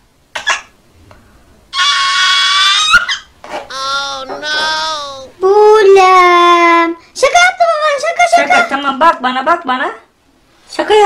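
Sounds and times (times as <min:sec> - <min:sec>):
toddler crying: 0:01.8 - 0:05.4.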